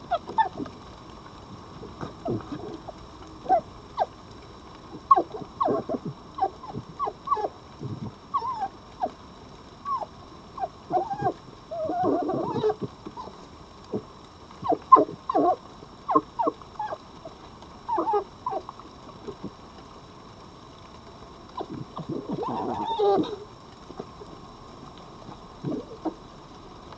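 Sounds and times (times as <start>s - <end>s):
foxes whimpering: 0.1s - 0.8s, 1.8s - 4.2s, 4.9s - 9.2s, 9.9s - 14.0s, 14.6s - 17.0s, 17.9s - 19.5s, 21.6s - 24.3s, 25.6s - 26.2s
rough fox outburst: 5.0s - 7.5s, 9.9s - 13.3s, 17.9s - 18.7s, 21.6s - 23.4s.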